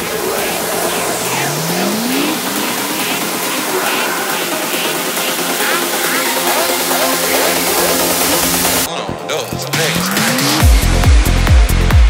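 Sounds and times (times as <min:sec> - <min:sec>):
hissing percussion: 0:00.0 - 0:08.9
rising gliding tone: 0:00.0 - 0:08.9.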